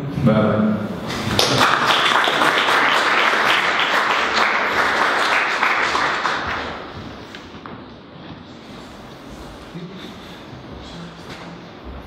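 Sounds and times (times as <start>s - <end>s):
audience applauding: 1.1s - 7.0s.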